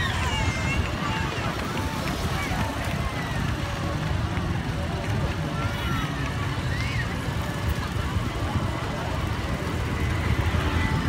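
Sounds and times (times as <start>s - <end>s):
crowd voices: 0.0s - 11.0s
motorbikes and cars rumbling: 0.0s - 11.0s.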